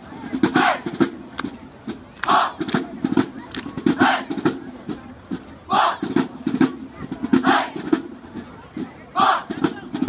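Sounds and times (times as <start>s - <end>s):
women shouting a chant: 5.7s - 6.0s, 9.2s - 9.5s.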